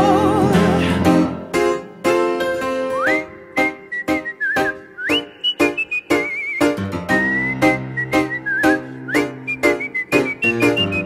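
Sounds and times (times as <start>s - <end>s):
rhythmic piano chords: 0.0s - 11.0s
man whistling a melody: 2.8s - 11.0s.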